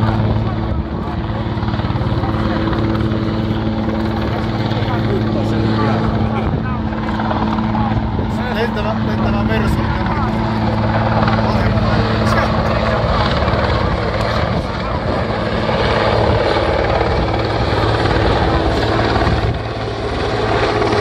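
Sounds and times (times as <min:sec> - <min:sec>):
helicopter rotor and turbine drone: 0:00.0 - 0:21.0.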